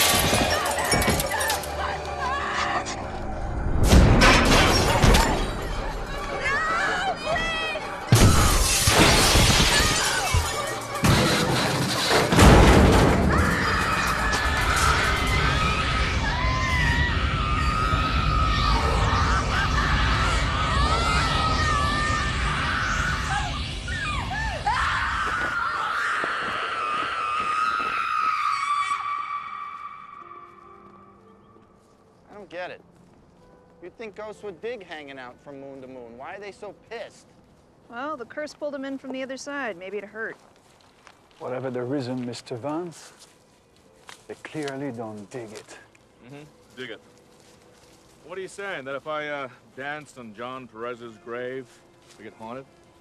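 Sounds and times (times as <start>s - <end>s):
breaking glass: 0.0s - 1.7s, 8.1s - 14.2s
music: 0.2s - 3.8s, 28.8s - 39.1s, 41.7s - 53.0s
loud crash: 3.8s - 5.6s, 11.0s - 15.6s
wavering shrieking cry: 13.3s - 30.4s.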